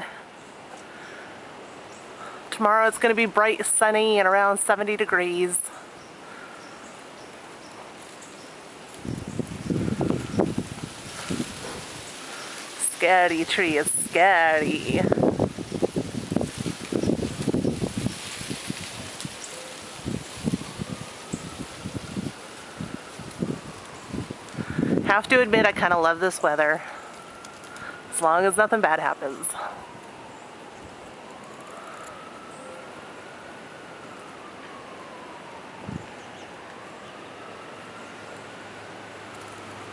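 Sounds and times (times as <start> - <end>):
wind and rustling: 0.0 - 39.9
distant siren wailing: 3.6 - 39.9
gusty wind buffeting microphone: 8.6 - 26.4, 34.8 - 36.2.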